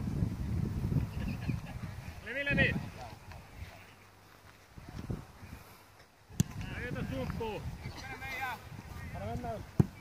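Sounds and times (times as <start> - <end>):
football kick thud: 9.7 - 10.0.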